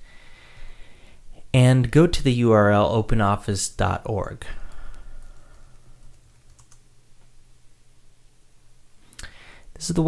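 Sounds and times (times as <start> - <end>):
computer keyboard key clicks: 6.3 - 6.8.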